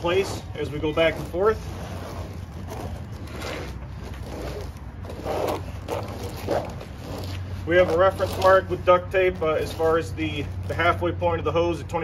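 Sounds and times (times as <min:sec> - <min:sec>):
hose scuffing and rubbing: 0:00.0 - 0:11.2
steady low hum: 0:00.0 - 0:12.0.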